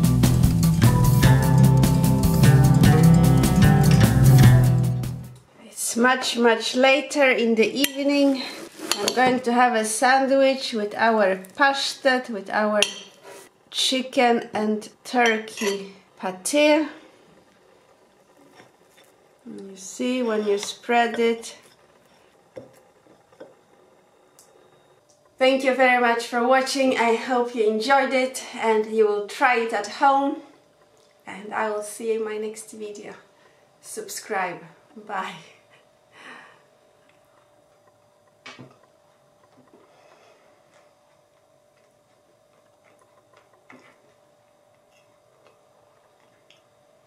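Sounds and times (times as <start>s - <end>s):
faint steady hum: 5.3s - 47.0s
knife scraping on bread: 8.5s - 9.2s.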